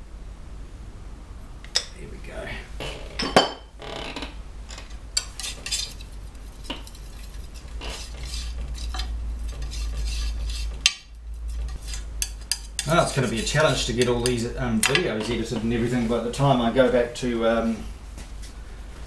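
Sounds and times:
knife scraping paint on glass: 5.2s - 14.4s.

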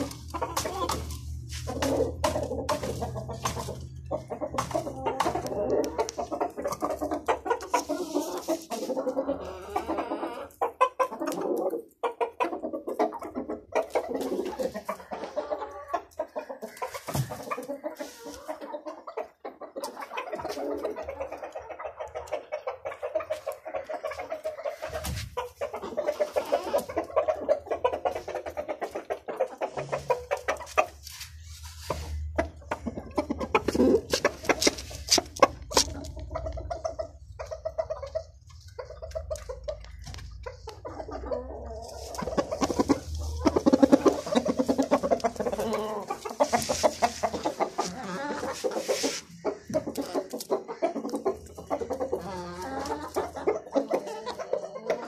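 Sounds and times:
chickens clucking and calling: 0.0s - 55.0s.

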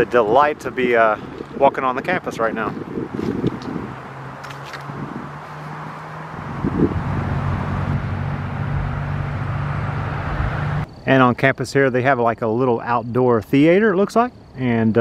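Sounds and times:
outdoor background noise: 0.0s - 15.0s
vehicle engine hum: 2.4s - 11.0s.

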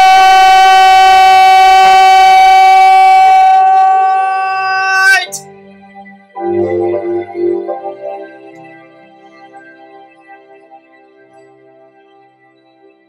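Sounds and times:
man singing high note: 0.0s - 5.5s
soft backing music: 5.3s - 13.0s.

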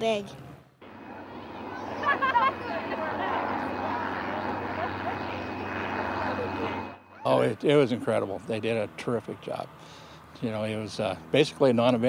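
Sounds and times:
faint high whine: 0.8s - 9.3s
jet engines roaring: 0.8s - 11.5s.

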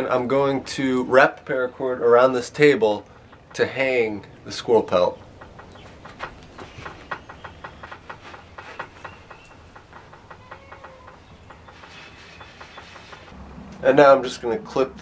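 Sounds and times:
cord rubbing on metal frame: 5.0s - 13.4s.

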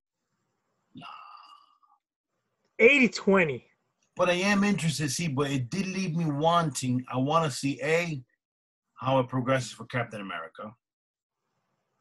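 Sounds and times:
person sighing: 1.0s - 1.8s.

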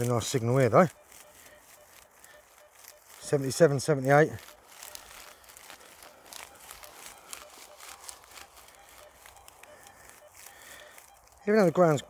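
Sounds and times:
crop stubble crackling: 0.0s - 12.0s.

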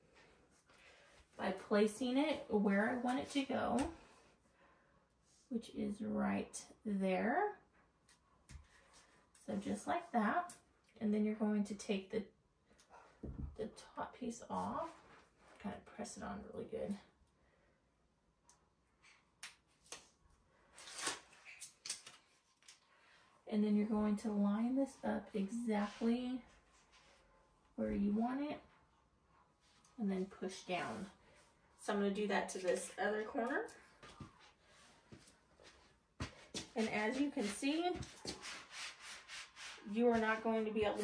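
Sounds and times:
slippers scuffing on a rug: 34.0s - 41.0s.

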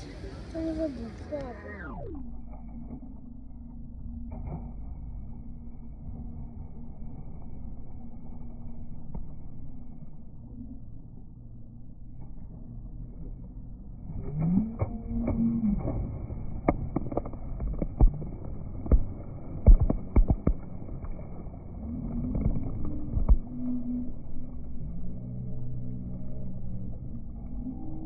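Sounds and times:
slowed low rumble: 0.0s - 28.0s
slowed deep voice-like glides: 12.6s - 28.0s
knocks and splashes in water: 14.8s - 23.5s.

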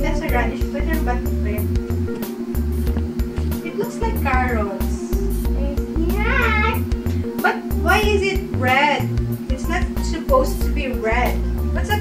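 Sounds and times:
upbeat background music: 0.0s - 12.0s
high-pitched voice: 5.6s - 6.9s.

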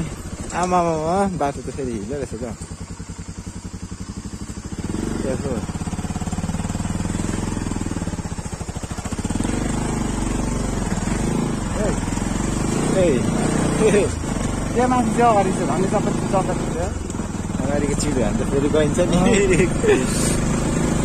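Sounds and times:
motorcycle engine running: 0.0s - 21.0s.

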